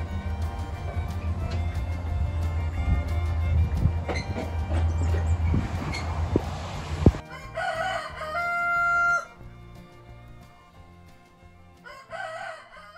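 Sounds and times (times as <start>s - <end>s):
rooster crowing: 0.0s - 9.5s, 11.8s - 12.9s
outdoor noise: 0.0s - 12.9s.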